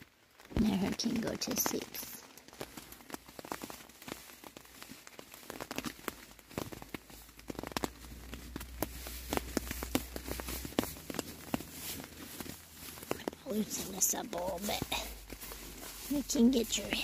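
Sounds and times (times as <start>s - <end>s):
nylon fabric crinkling: 0.0s - 17.0s.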